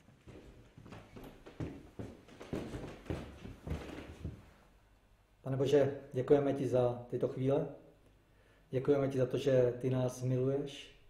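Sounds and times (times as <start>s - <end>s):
footsteps on hard floor: 0.0s - 4.6s.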